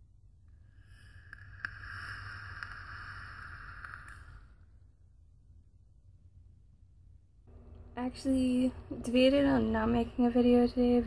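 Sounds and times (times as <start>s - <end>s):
hiss of air through vape tank: 0.7s - 4.6s
faint crackles: 0.8s - 4.6s.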